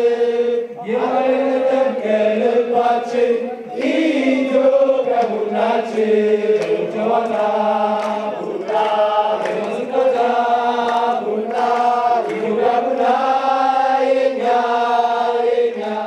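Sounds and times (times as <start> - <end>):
crowd chanting in unison: 0.0 - 16.0.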